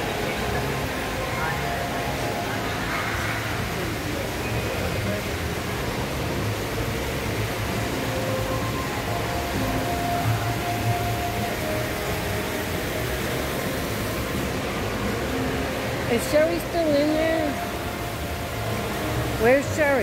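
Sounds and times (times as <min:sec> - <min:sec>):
ventilation hiss and hum: 0:00.0 - 0:20.0.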